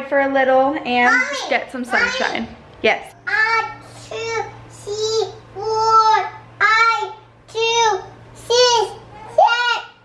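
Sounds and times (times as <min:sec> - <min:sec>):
faint steady hum: 0:00.0 - 0:10.0
toddler sing-song chanting: 0:03.2 - 0:10.0.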